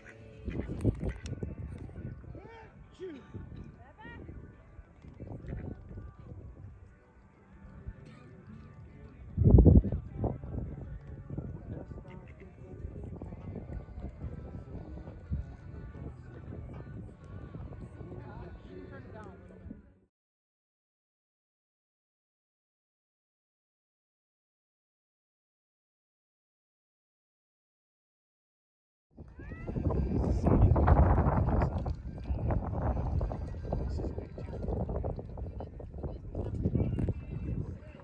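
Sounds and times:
wind rumble on microphone: 0.0 - 20.0, 29.2 - 38.0
faint music: 0.0 - 20.1, 29.2 - 38.0.

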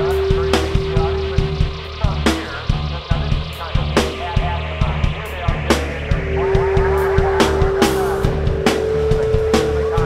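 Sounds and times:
heavy pulsing bass: 0.0 - 10.0
held synth tone: 0.0 - 10.0
irregular drum hits: 0.0 - 10.0
warbling squealing synth noise: 0.0 - 10.0.

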